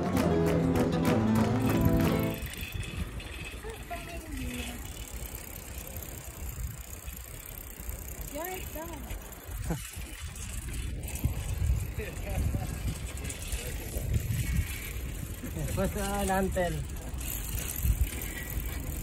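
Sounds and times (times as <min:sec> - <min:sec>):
wind rumbling on microphone: 0:01.7 - 0:19.0
voices: 0:03.4 - 0:06.9, 0:08.1 - 0:09.9.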